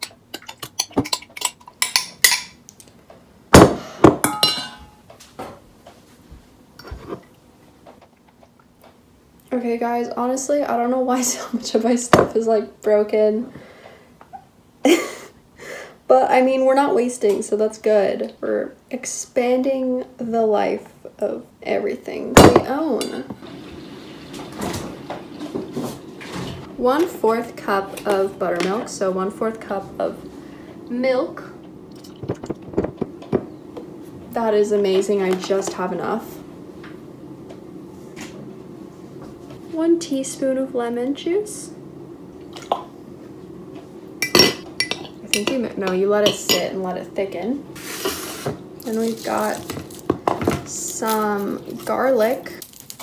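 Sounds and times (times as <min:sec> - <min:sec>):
ringing clank on metal bowl: 0:04.2 - 0:05.0.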